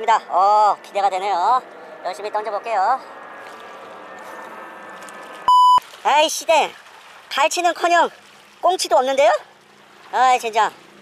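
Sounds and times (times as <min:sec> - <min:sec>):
censor bleep tone: 0:05.5 - 0:05.8.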